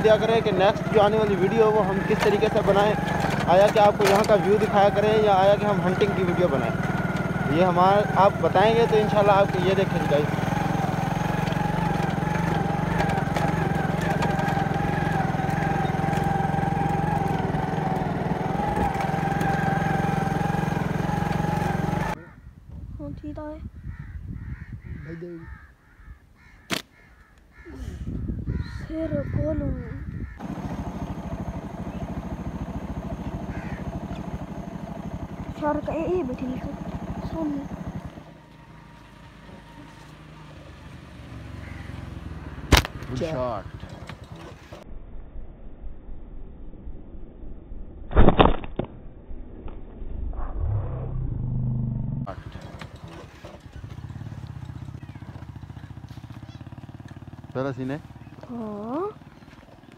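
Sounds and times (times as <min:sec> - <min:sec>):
vehicle engine accelerating: 0:00.0 - 0:22.2, 0:30.2 - 0:44.9, 0:50.0 - 0:59.9
crows cawing: 0:00.0 - 0:22.6, 0:23.8 - 0:35.6, 0:36.5 - 0:42.7, 0:52.3 - 0:57.5
sharp snap: 0:26.7 - 0:26.9, 0:42.7 - 0:43.1, 0:48.1 - 0:49.0.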